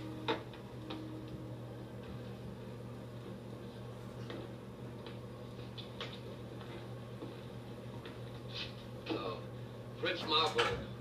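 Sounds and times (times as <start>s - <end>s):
film soundtrack low hum: 0.0s - 11.0s.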